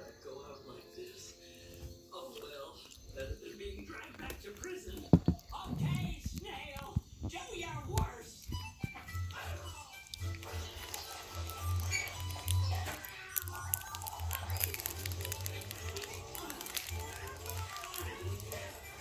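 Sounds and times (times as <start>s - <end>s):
television music: 0.0s - 19.0s
television voices: 0.0s - 19.0s.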